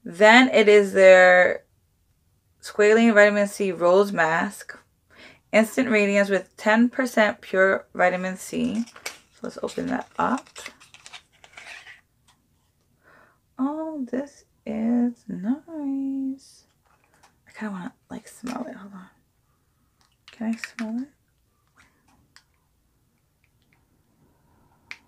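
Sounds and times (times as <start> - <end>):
cardboard scraping and rustling: 8.6 - 12.0.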